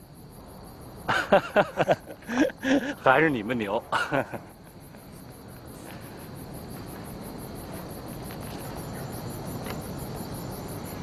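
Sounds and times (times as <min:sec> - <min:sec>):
crickets chirping: 0:00.0 - 0:11.0
steady hiss: 0:00.0 - 0:11.0.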